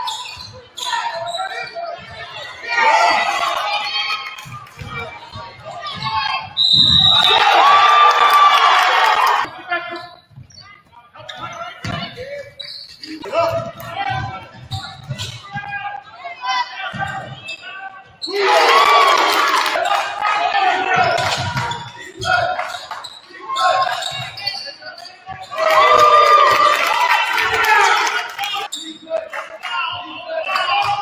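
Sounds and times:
players and coaches shouting: 0.8s - 10.0s, 15.4s - 31.0s.

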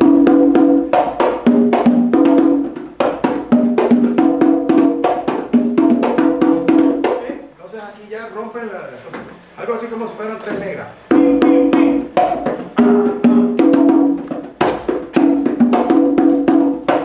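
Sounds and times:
percussion rhythm with clicks: 0.0s - 7.4s, 11.1s - 17.0s
man speaking: 7.2s - 12.2s
ringing drum tones: 11.0s - 16.8s.

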